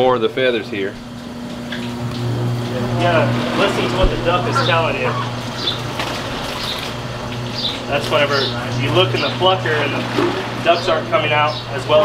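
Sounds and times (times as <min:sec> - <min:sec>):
hot water churning: 0:00.0 - 0:12.0
low electric hum: 0:00.0 - 0:12.0.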